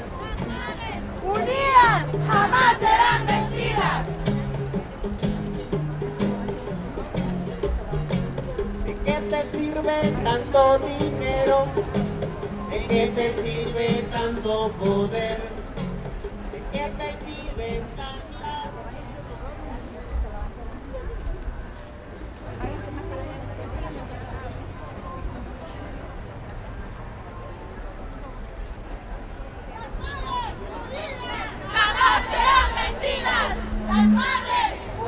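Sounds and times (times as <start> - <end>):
lead voice singing: 0.3 - 4.3, 8.8 - 16.0, 16.6 - 18.9, 31.7 - 35.0.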